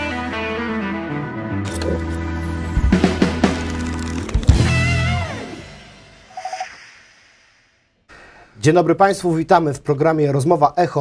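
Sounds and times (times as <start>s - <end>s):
tv intro jingle: 1.7s - 7.9s
brief swish: 6.3s - 7.8s.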